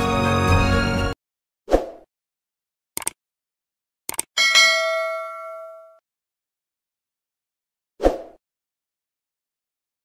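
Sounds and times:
clicks: 3.0 - 3.2, 4.1 - 4.3
notification bell ding: 4.4 - 6.0.

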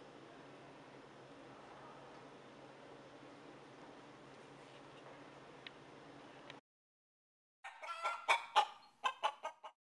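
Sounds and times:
chicken clucking: 7.6 - 9.8.

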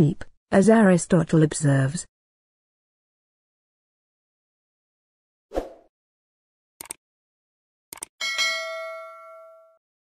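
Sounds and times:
double mouse click: 6.8 - 7.0
bright bell ding: 8.2 - 9.8.

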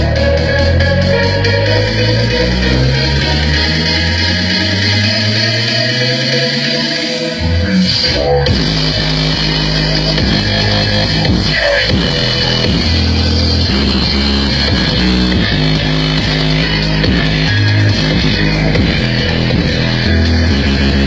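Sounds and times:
loud music with bass and guitar: 0.0 - 21.0.

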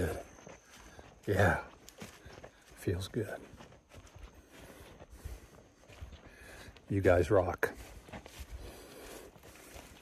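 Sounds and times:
faint footsteps walking: 0.0 - 10.0.

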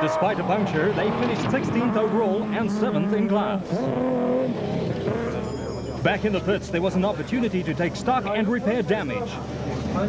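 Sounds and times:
pickup truck engine at speed: 0.0 - 10.0.

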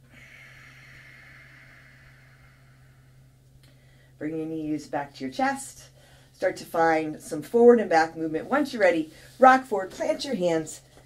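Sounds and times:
long breath out: 0.0 - 4.2
steady low hum: 0.0 - 11.0.

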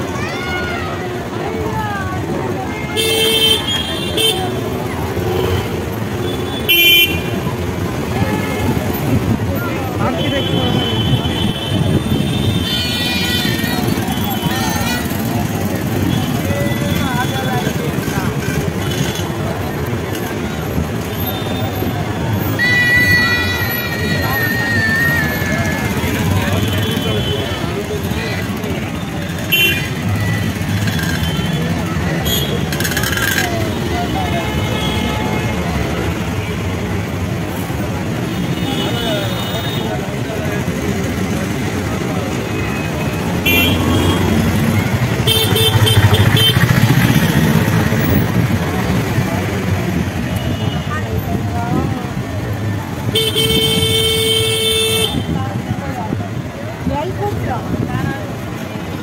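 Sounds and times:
motorcycle and car traffic: 0.0 - 59.0
street crowd chatter: 0.0 - 59.0
vehicle horns tooting: 2.8 - 7.7, 21.2 - 28.6, 29.2 - 36.8, 41.8 - 48.0, 53.1 - 55.4.

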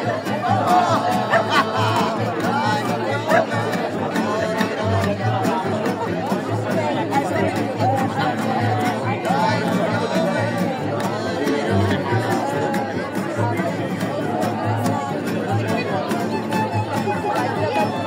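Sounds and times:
people chattering: 0.0 - 18.0
plucked double bass: 0.0 - 18.0
strummed acoustic guitar: 0.0 - 18.0
violin melody: 15.8 - 18.0.

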